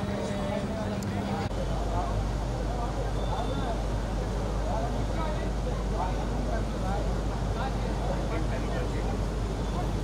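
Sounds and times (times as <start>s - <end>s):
chatter of many voices: 0.0s - 10.0s.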